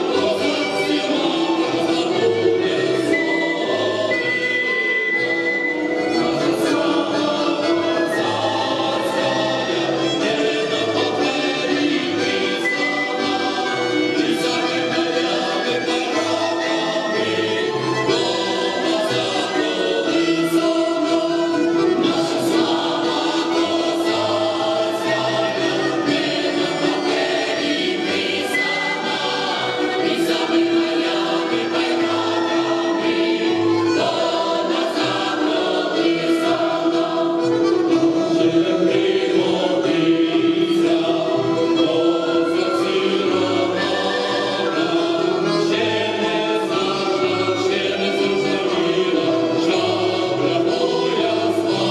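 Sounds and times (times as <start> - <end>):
accordion: 0.0 - 51.9
mixed choir singing folk song: 0.0 - 51.9
wooden folk pipe: 0.0 - 51.9.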